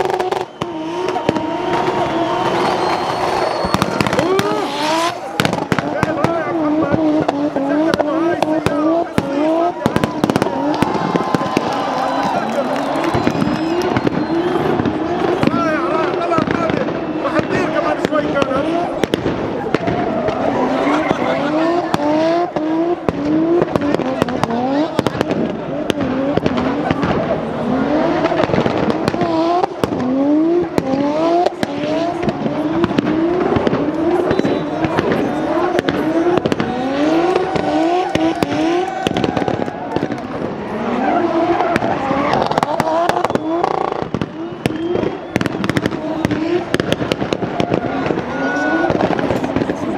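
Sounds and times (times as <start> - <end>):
car engine revving hard: 0.0 - 49.9
sharp exhaust pops: 28.1 - 49.9.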